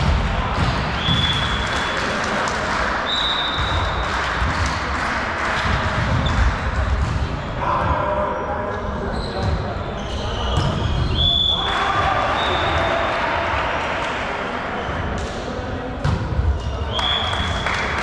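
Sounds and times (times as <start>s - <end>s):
sneaker squeaks on court floor: 9.1s - 11.4s.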